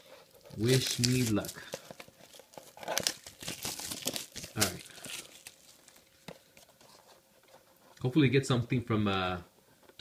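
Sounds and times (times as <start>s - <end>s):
plastic shrink-wrap crinkling and tearing: 0.2s - 6.3s.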